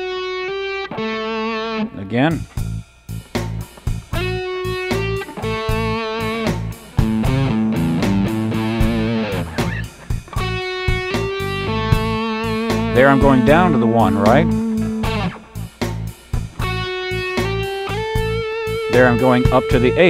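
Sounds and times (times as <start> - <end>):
electric guitar blues lick: 0.0 - 2.7, 4.1 - 20.0.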